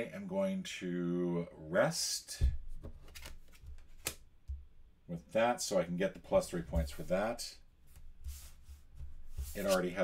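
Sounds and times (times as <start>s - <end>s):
cards rustling and tapping: 2.5s - 4.7s, 7.9s - 10.0s.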